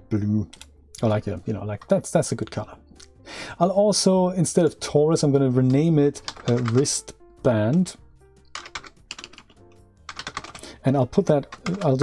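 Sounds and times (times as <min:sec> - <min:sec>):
keyboard typing clicks: 0:08.5 - 0:10.6.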